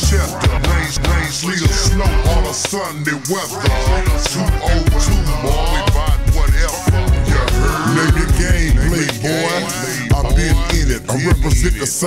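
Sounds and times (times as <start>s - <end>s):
deep bass: 0.0s - 11.9s
slowed rapping over a beat: 0.0s - 12.0s.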